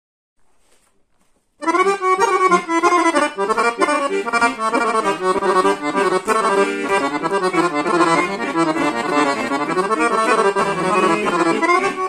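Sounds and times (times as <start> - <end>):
faint handling noise: 0.4 - 1.6
button accordion playing: 1.6 - 12.0.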